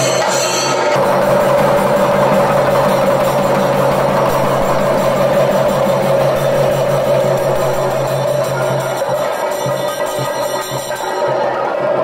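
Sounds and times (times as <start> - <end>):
steady sustained tone: 0.0 - 11.3
drums rolling with sticks: 0.0 - 12.0.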